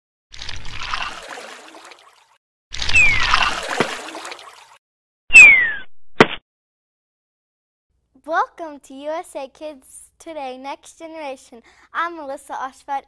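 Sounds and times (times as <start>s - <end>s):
falling whistle: 5.3s - 5.8s.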